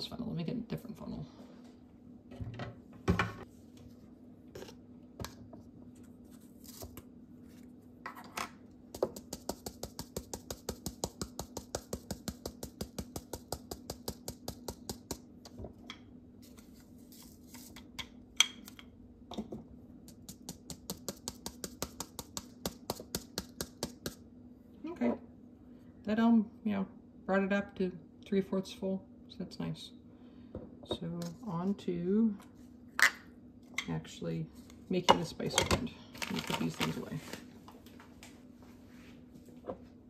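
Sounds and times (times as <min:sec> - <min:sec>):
rapid tapping on plastic funnel: 0:08.9 - 0:15.2, 0:20.1 - 0:24.2.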